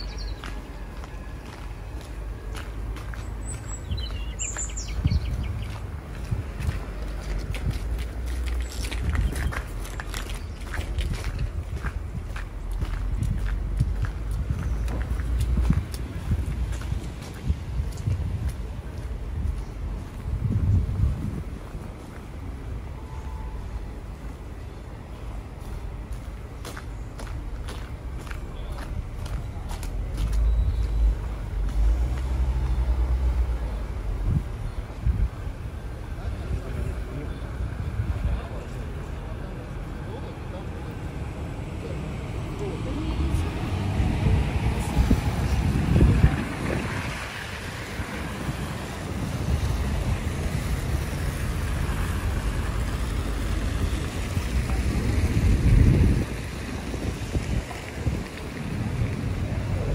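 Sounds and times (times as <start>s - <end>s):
wind buffeting microphone: 0.0s - 22.9s, 25.4s - 40.1s, 40.9s - 59.9s
traffic noise: 0.0s - 59.9s
passers-by talking: 24.0s - 59.9s
car passing on slushy road: 41.2s - 59.9s.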